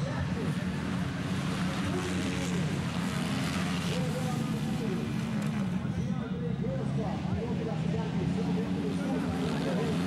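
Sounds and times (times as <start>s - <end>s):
motorcycle engines revving: 0.0s - 6.0s, 6.8s - 10.0s.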